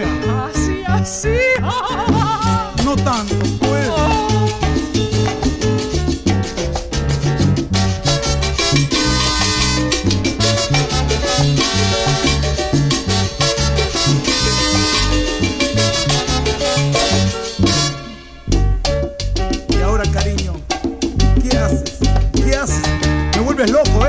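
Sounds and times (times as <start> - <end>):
bass: 0.0 - 24.0
percussion beat: 0.0 - 24.0.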